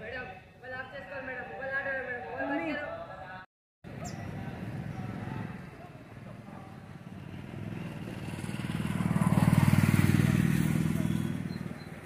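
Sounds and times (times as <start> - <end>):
motorcycle passing by: 4.3 - 12.0.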